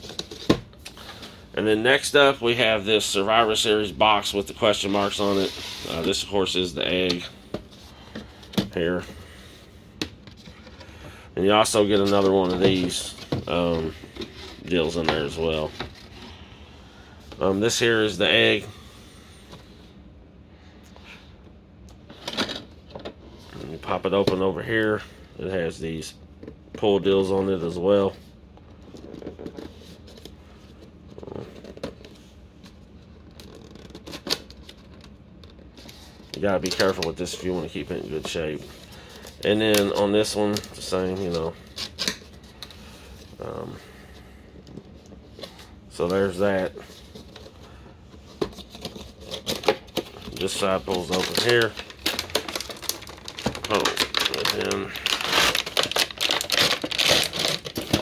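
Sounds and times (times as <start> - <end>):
plastic packaging crinkling: 44.6 - 58.0.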